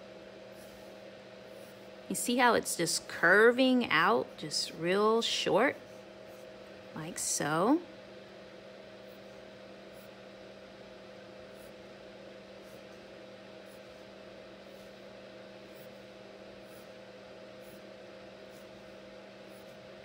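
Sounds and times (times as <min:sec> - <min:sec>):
room hum and hiss: 0:00.0 - 0:20.0.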